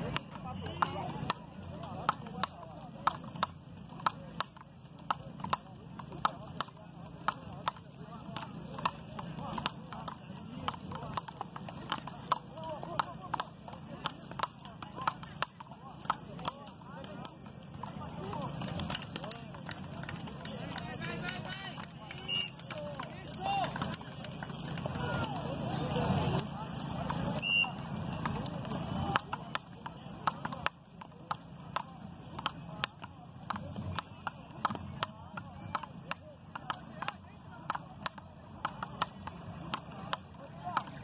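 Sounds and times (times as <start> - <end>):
paddles hitting ball: 0.0 - 41.0
voices: 0.0 - 41.0.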